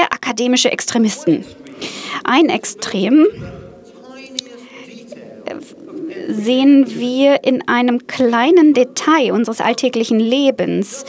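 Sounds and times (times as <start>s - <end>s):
surrounding talk: 0.0s - 11.0s
person speaking quietly: 2.4s - 6.7s.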